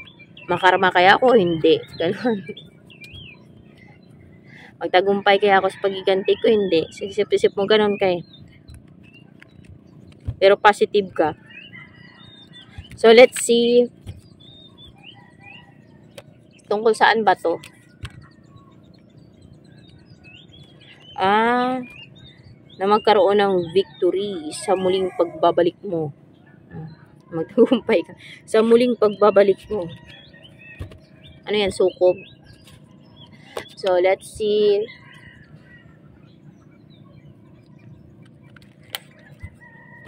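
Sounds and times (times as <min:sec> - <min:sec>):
faint bird chirps: 0:00.0 - 0:40.0
outdoor ambience: 0:00.0 - 0:40.0.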